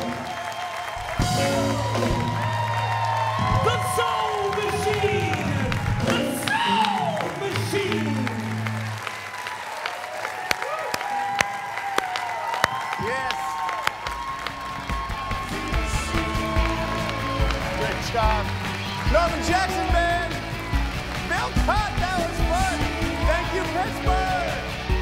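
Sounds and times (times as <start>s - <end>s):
audience applause: 0.0s - 25.0s
live rock band playing: 1.0s - 4.0s, 14.2s - 25.0s.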